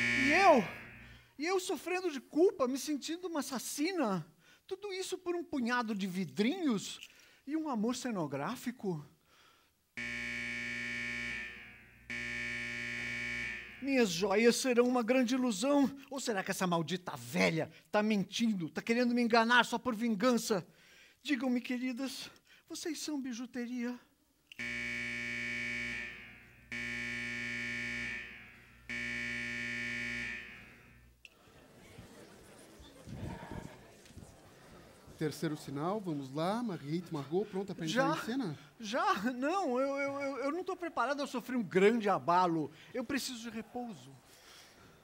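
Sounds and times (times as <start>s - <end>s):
long electric buzzes: 0.0s - 1.2s, 10.0s - 14.0s, 24.6s - 31.2s.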